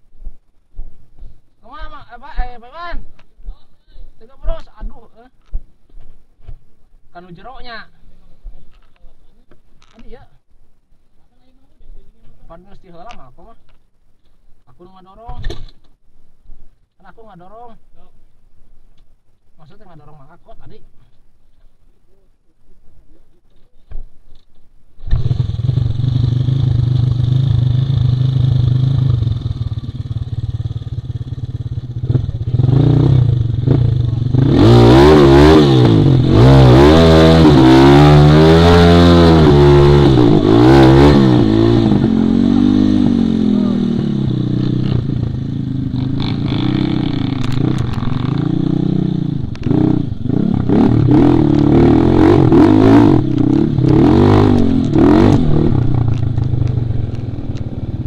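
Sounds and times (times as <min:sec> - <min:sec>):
motorcycle engine revving: 0:25.0 - 0:58.0.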